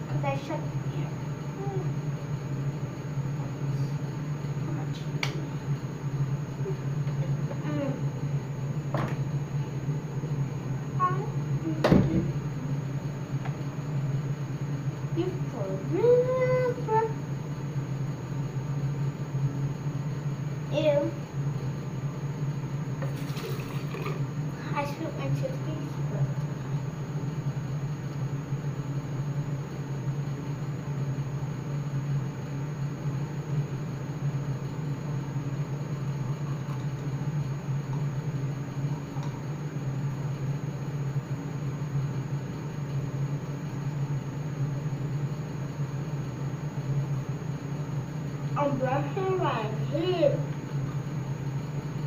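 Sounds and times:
steady low hum: 0:00.0 - 0:52.0
teeth brushing with toothbrush: 0:23.1 - 0:24.2.

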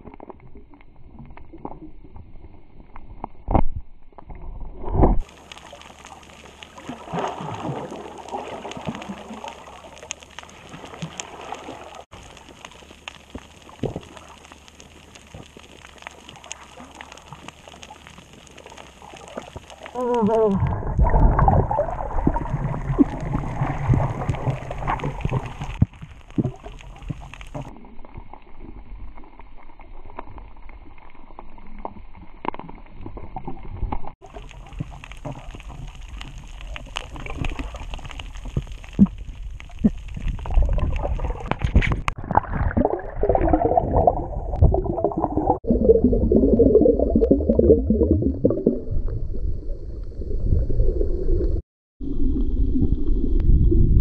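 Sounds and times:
water sloshing underwater: 0:00.0 - 0:54.0.

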